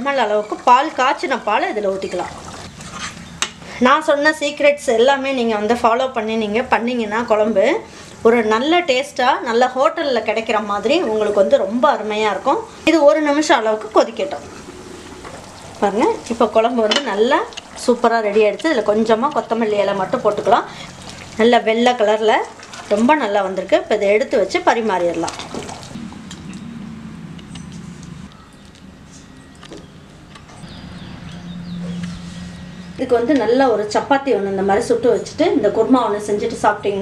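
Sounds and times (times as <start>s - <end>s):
ladle stirring swishing: 0.5s - 3.3s, 13.6s - 23.6s, 24.5s - 26.3s
pan simmering and bubbling: 10.8s - 26.7s
person talking: 15.8s - 20.8s, 21.4s - 25.4s.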